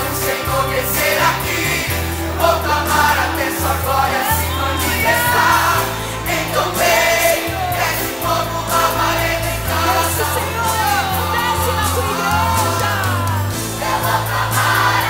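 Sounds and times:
band accompaniment with bass line: 0.0 - 15.0
choir singing: 0.0 - 15.0.

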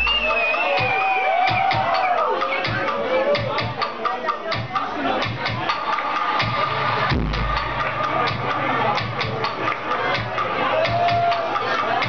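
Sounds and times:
techno over club sound system: 0.0 - 12.0
deep bass note: 6.6 - 8.8.

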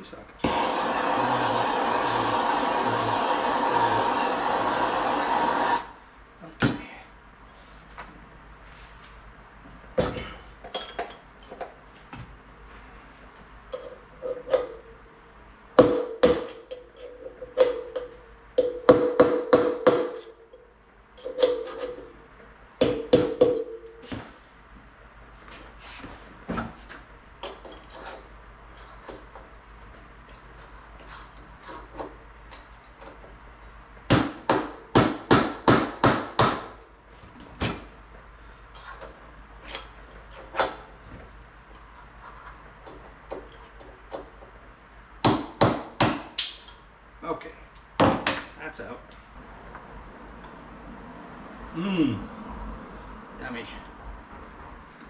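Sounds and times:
hammer striking metal punch: 15.8 - 16.8, 17.6 - 20.4, 22.8 - 24.1.

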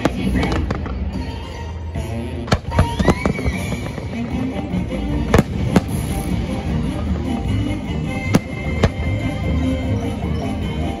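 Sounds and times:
fireworks bursting with sharp bangs: 0.0 - 1.6, 2.4 - 9.5
music soundtrack: 0.0 - 11.0.

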